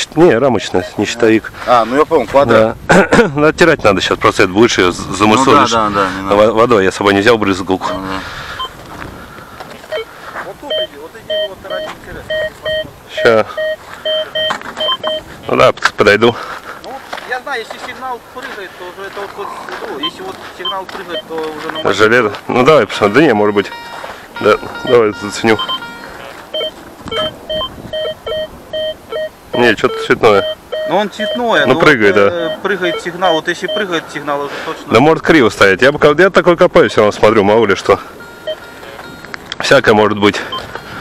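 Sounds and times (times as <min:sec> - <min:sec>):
steady outdoor hiss: 0:00.0 - 0:41.0
metal detector beeps: 0:07.8 - 0:08.8, 0:09.9 - 0:10.1, 0:10.7 - 0:15.3, 0:20.0 - 0:34.0, 0:38.0 - 0:39.4, 0:40.3 - 0:41.0.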